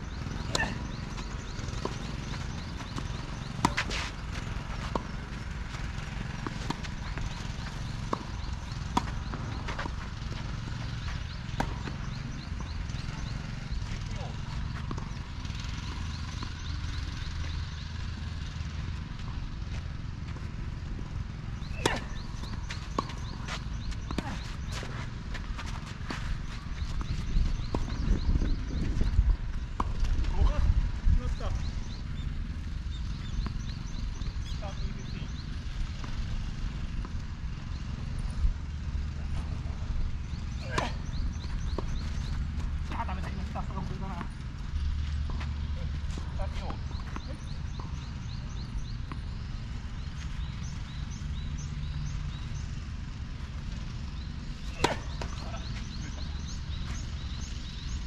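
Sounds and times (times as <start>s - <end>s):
racket hitting tennis ball: 0.2s - 15.3s, 21.6s - 28.1s, 54.4s - 57.2s
wind rumble on microphone: 26.2s - 32.5s
ball bouncing: 54.7s - 56.5s.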